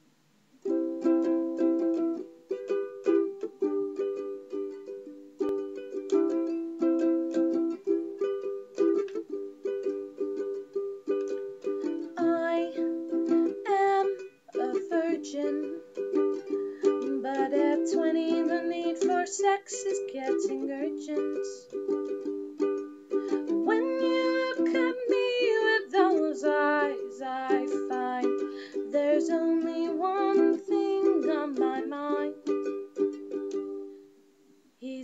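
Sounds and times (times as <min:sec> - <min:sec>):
ukulele strumming chords: 0:00.6 - 0:34.6.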